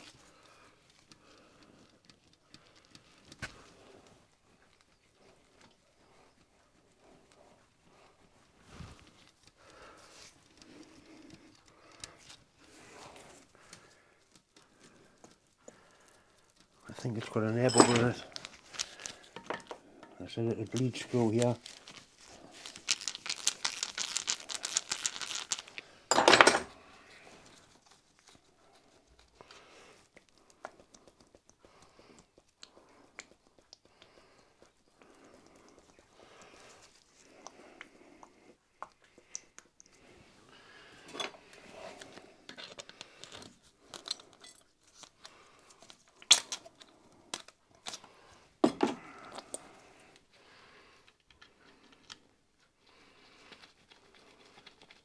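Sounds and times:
small metal clicks and scrapes: 0.0s - 5.8s, 41.0s - 48.1s, 51.0s - 55.0s.

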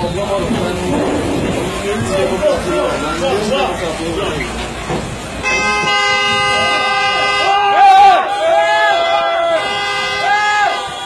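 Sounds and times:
horn long steady blast: 5.2s - 11.0s
voices shouting: 5.4s - 11.0s.

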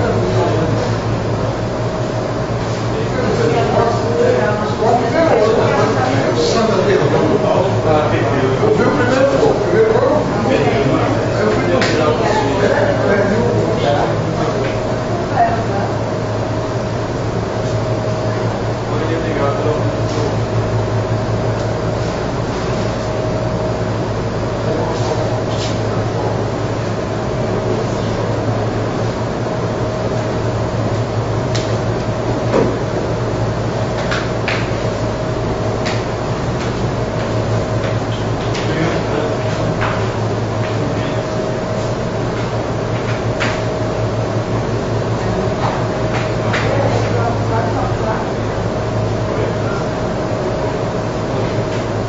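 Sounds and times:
steady low hum: 0.0s - 52.0s.

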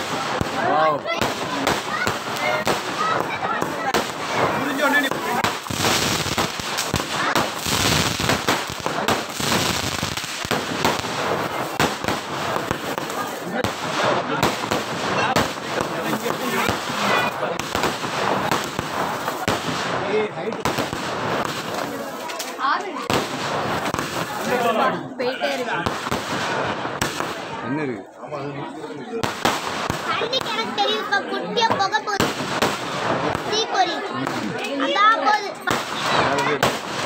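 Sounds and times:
fireworks bursting: 0.0s - 27.7s, 29.0s - 37.0s
fireworks crackling: 0.0s - 37.0s
sharp bangs: 32.2s - 33.5s.

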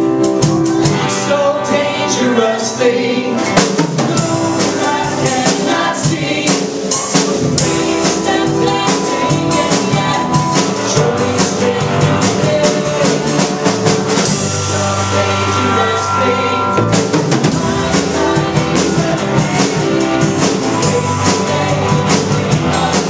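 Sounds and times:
band playing worship song: 0.0s - 23.0s
voices singing: 0.7s - 23.0s.

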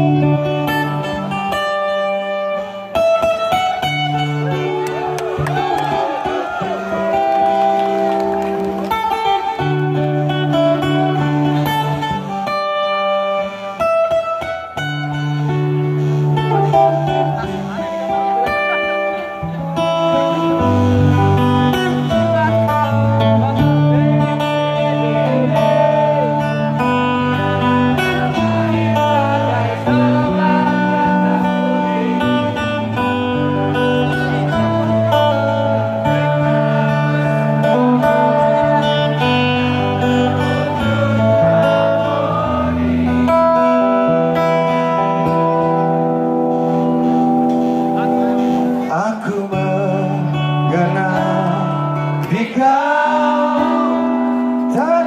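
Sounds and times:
amplified acoustic guitar: 0.0s - 55.0s.

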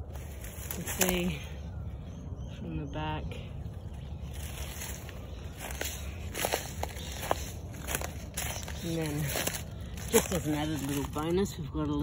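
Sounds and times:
footsteps crunching on dry leaves: 0.0s - 1.9s, 3.5s - 12.0s
low rumble: 0.0s - 12.0s.

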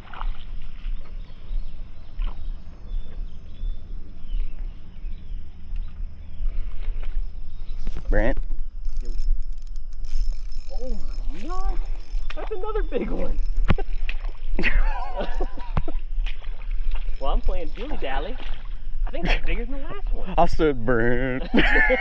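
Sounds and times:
steady low rumble: 0.0s - 22.0s
indistinct voices: 10.6s - 15.8s.

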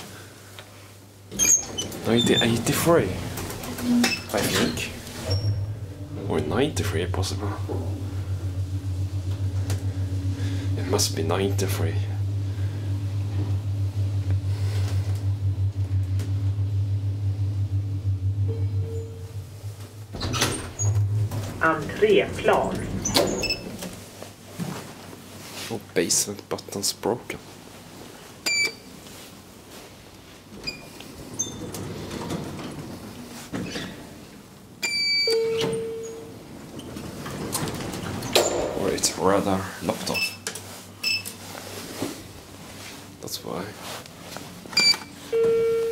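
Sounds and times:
elevator drive humming: 1.3s - 24.0s
elevator button beep: 12.1s - 23.7s, 34.8s - 36.3s, 44.8s - 45.9s.

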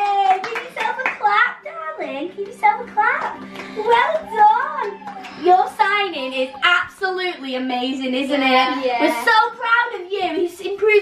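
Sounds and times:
people clapping: 0.0s - 6.6s
excited voices: 0.0s - 7.3s.

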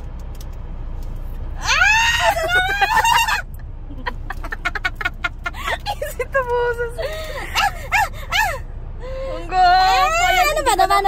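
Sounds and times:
light clicks and rustles: 0.0s - 1.5s
woman squealing excitedly: 1.6s - 3.5s, 7.0s - 8.6s.

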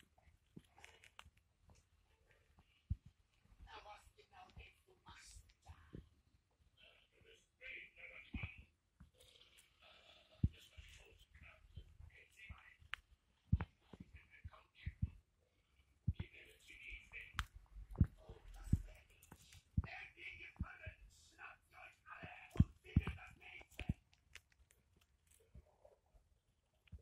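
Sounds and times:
hamster nibbling peanut shell: 0.0s - 3.1s, 22.1s - 25.7s.

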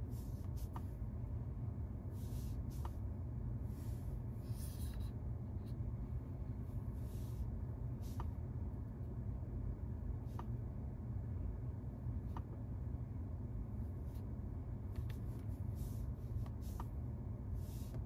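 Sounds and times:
low car cabin hum: 0.0s - 18.0s.

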